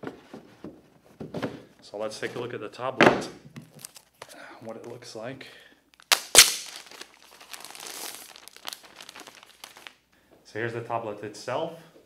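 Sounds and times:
plastic sheet crinkling: 0:03.7 - 0:04.2, 0:06.0 - 0:10.0.

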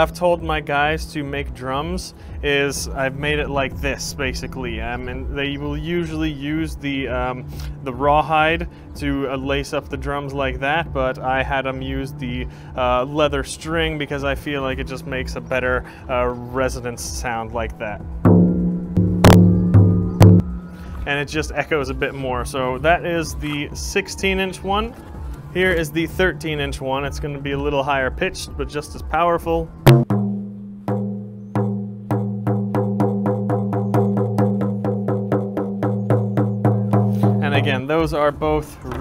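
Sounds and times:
frame drum booming beats: 0:01.8 - 0:07.4, 0:18.0 - 0:23.0, 0:29.8 - 0:37.9.

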